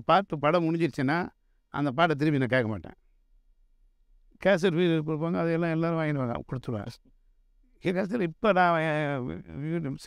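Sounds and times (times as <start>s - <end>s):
man talking: 0.0s - 3.0s, 4.4s - 7.1s, 7.8s - 10.0s.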